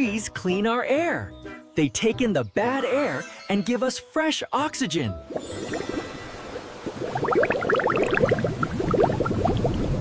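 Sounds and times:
cartoon bubbling bloops: 6.8 - 10.0.

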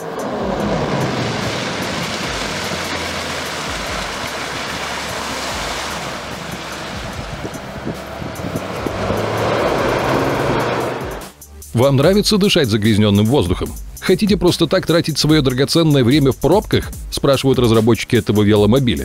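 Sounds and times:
hovercraft engine and fan rushing: 0.0 - 11.4.

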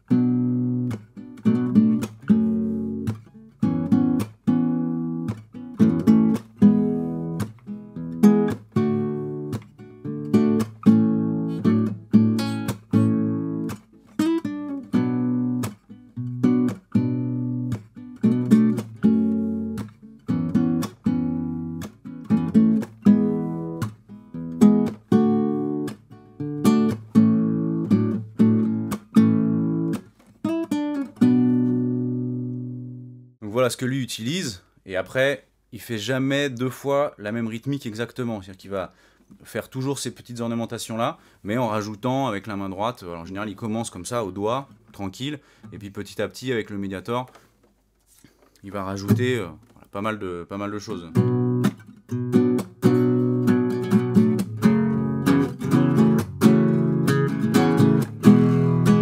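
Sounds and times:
nylon-string guitar fingerpicked: 0.0 - 33.3, 46.4 - 59.0.

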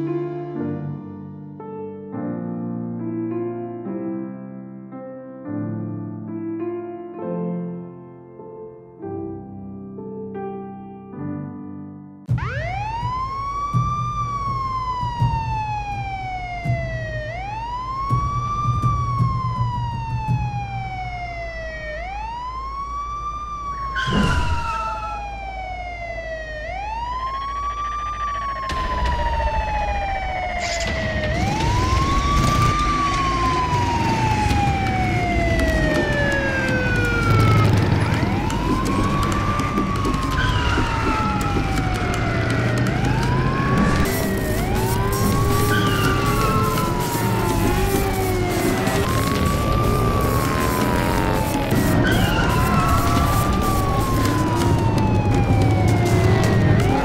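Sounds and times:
siren wailing: 12.3 - 57.0
brief whoosh: 24.0 - 25.3.

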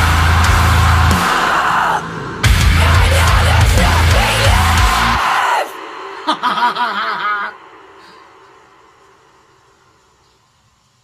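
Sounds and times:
heavy metal band playing: 0.0 - 6.6
wavering voice: 0.9 - 8.2.

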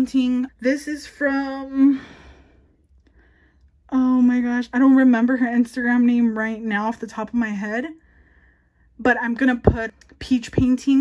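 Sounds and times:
woman's voice: 0.0 - 2.3, 3.9 - 8.0, 9.0 - 11.0.

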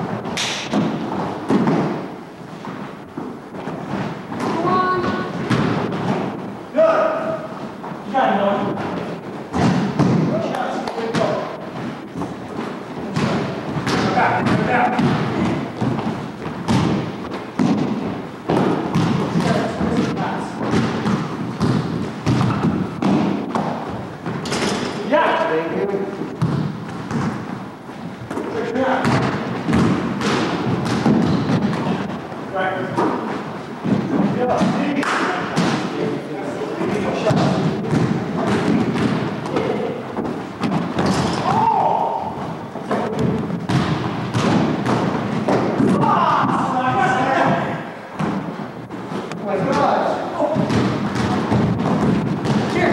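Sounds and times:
feet thudding: 0.0 - 25.1, 26.1 - 36.0, 36.8 - 52.9
basketball bouncing on hardwood: 11.1 - 24.5, 26.4 - 27.6, 29.0 - 32.1, 42.4 - 47.6, 50.5 - 52.9.

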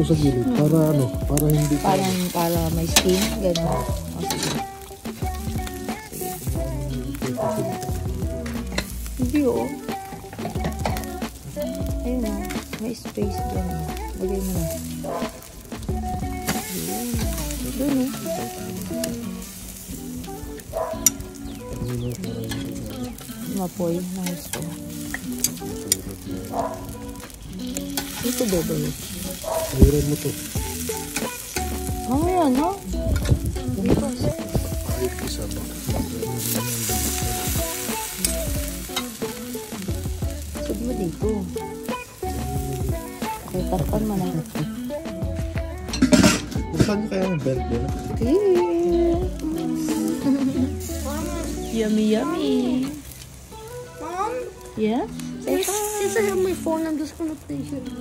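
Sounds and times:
food sizzling over charcoal: 0.0 - 58.0
music with stepping melody: 0.0 - 58.0
metal tongs clicking on grate: 2.9 - 4.9, 21.0 - 21.2, 24.2 - 26.0, 26.8 - 28.4
metal clicks on grill grate: 24.2 - 28.6, 45.9 - 46.5.

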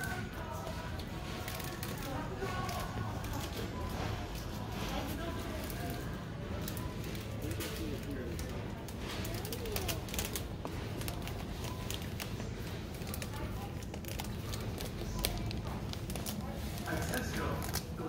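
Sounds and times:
indistinct chatter of shoppers: 0.0 - 18.0.

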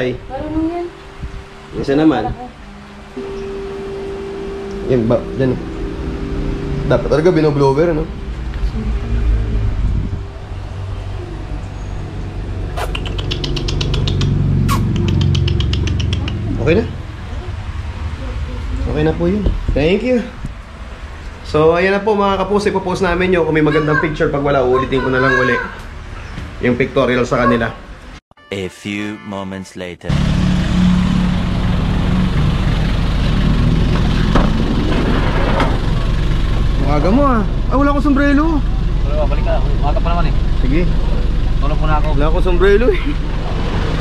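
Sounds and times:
steady low hum: 0.0 - 12.8.

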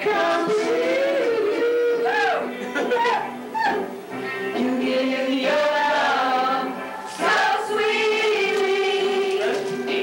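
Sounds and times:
group of voices singing: 0.0 - 2.4, 4.5 - 10.0.

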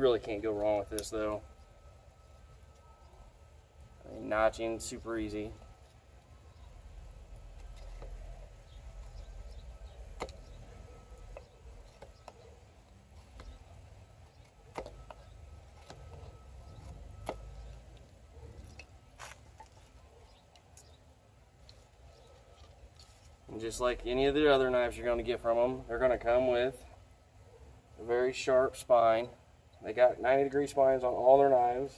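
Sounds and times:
low steady rumble: 0.0 - 30.4.

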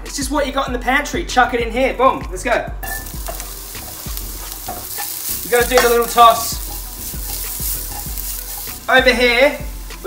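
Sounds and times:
vegetables sizzling in frying pan: 2.8 - 10.0.

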